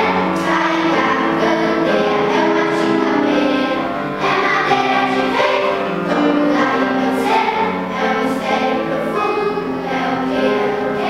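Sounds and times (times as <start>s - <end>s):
children's choir singing: 0.0s - 11.0s
grand piano: 0.0s - 11.0s.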